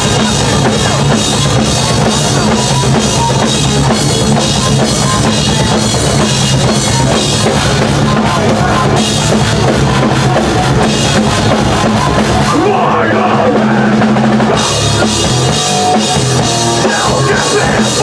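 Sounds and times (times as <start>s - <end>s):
bass guitar: 0.0s - 18.0s
distorted electric guitar: 0.0s - 18.0s
rapid drum hits: 0.0s - 18.0s.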